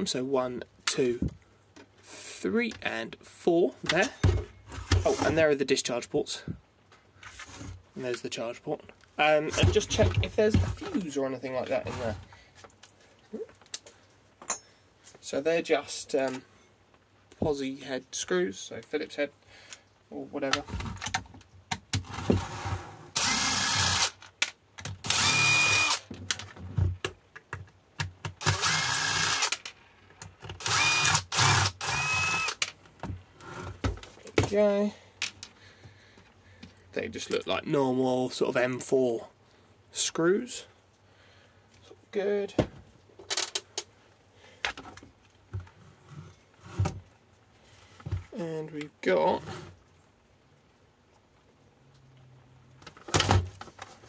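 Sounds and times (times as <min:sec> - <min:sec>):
cordless drill motor whining: 0:23.2 - 0:24.1, 0:25.0 - 0:26.1, 0:28.4 - 0:29.6, 0:30.6 - 0:32.6.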